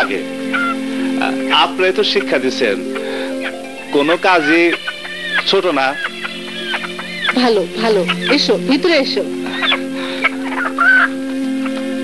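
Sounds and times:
chicken clucking and squawking: 0:00.5 - 0:00.8, 0:02.2 - 0:08.5, 0:09.4 - 0:11.8.

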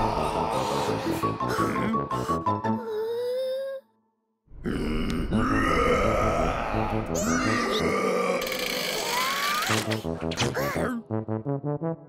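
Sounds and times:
background music: 0:00.0 - 0:03.8, 0:04.6 - 0:12.0.

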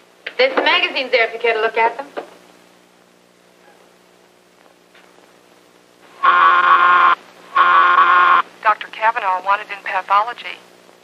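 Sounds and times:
paging signal tones: 0:06.2 - 0:08.4.

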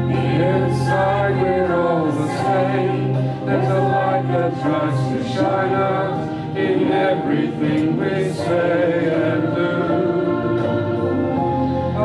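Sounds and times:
group of people singing: 0:00.0 - 0:12.0.

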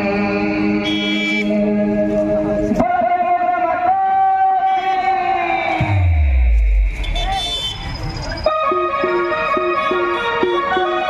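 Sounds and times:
band music over loudspeaker: 0:01.4 - 0:07.4, 0:08.3 - 0:11.0.

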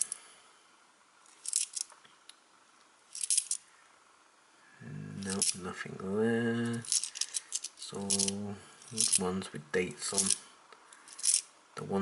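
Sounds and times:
coins clinking in a hand: 0:01.4 - 0:01.9, 0:03.1 - 0:03.6, 0:05.2 - 0:05.6, 0:06.8 - 0:09.2, 0:10.1 - 0:10.4, 0:11.1 - 0:11.5.

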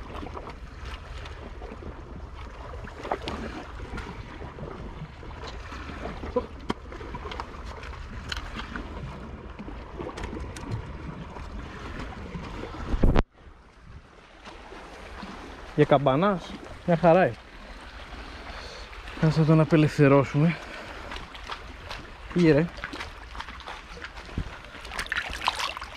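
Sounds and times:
wind rumbling on microphone: 0:00.0 - 0:15.8, 0:20.6 - 0:25.9
sea water washing against rocks: 0:14.3 - 0:25.9.

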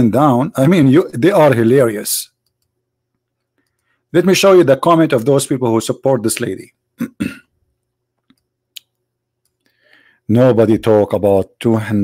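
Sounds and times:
soft clicks: 0:02.4 - 0:04.0, 0:07.8 - 0:09.7
faint breath: 0:09.6 - 0:10.3.

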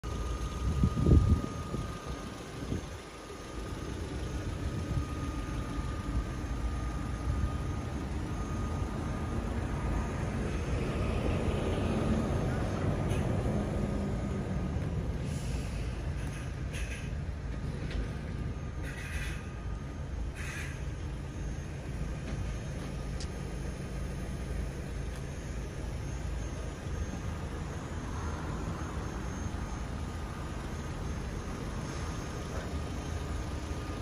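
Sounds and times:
road traffic rumble: 0:00.0 - 0:34.0.

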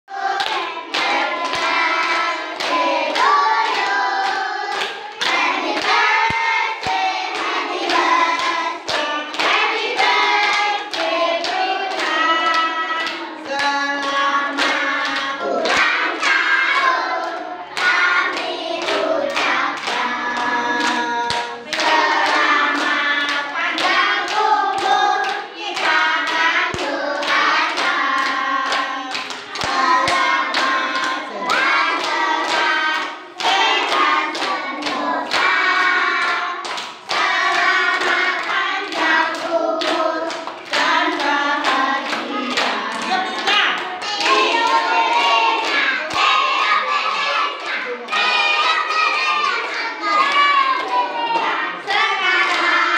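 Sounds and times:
children singing birthday song: 0:00.0 - 0:52.9.

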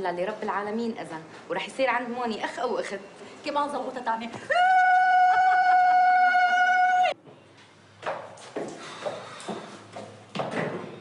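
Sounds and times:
woman ululating: 0:04.5 - 0:07.2.

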